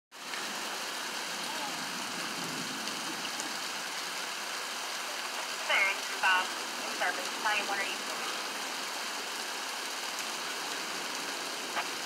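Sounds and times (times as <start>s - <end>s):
heavy rain falling: 0.1s - 12.0s
person's voice: 1.4s - 1.9s, 5.1s - 8.2s.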